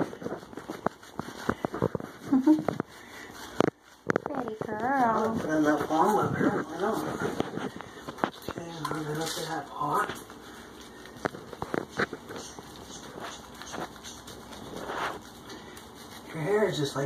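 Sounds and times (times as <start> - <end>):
hand rubbing wet fur: 0.0 - 17.0.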